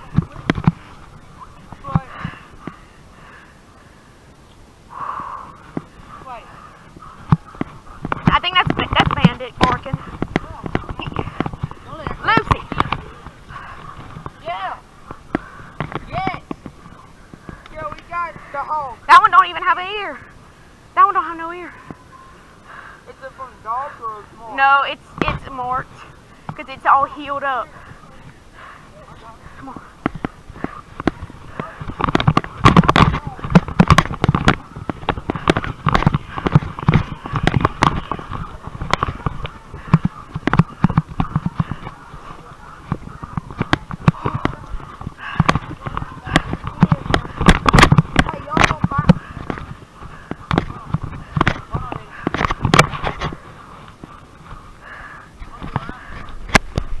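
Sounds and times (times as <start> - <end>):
microphone knocking: 0.0 - 0.9, 6.9 - 14.4, 15.0 - 17.9, 29.6 - 54.6
thumps and rustling through brush: 0.0 - 2.8, 5.6 - 20.2, 23.7 - 57.0.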